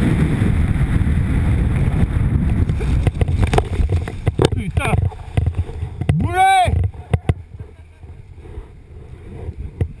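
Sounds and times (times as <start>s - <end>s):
wind rumble on microphone: 0.0s - 10.0s
grass brushing microphone: 1.3s - 10.0s.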